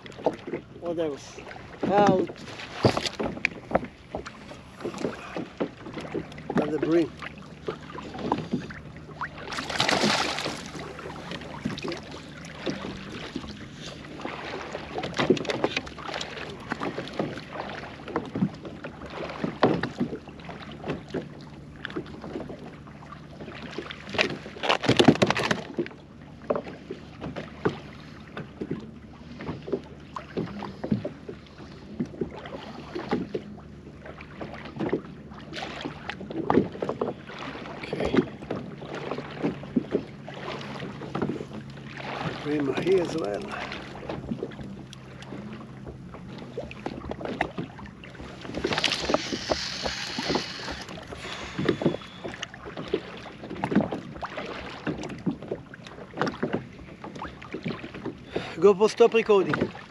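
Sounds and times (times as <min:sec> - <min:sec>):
water slapping against kayak: 0:00.0 - 0:59.9.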